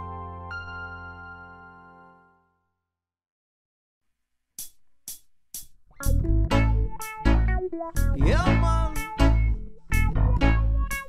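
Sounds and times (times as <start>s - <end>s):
reggae song with bass and guitar: 6.0s - 11.0s.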